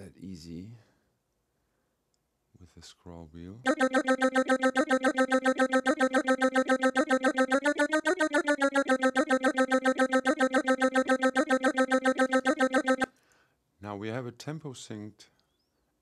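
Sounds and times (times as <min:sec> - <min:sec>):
synthesized voice singing rapid syllables: 0:03.7 - 0:13.1.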